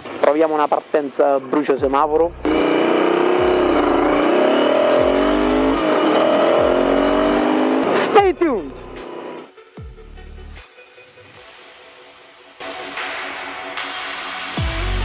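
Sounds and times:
motorcycle engine accelerating: 2.4 - 9.5.

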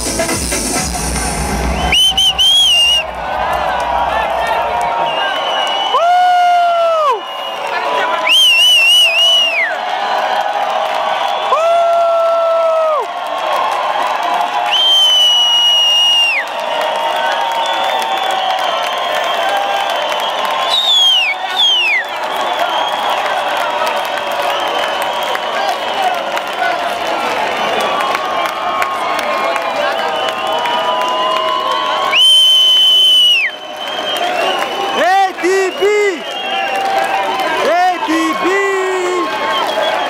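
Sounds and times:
crowd cheering: 0.0 - 40.0
high whistles: 1.6 - 3.2, 4.9 - 6.0, 7.1 - 9.8, 14.7 - 16.8, 17.5 - 23.3, 29.8 - 35.0
long whoops: 1.8 - 26.2, 27.9 - 40.0.

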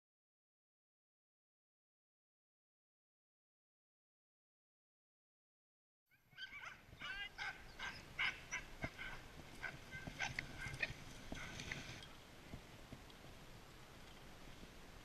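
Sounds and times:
dogs barking and yelping: 6.3 - 12.0.

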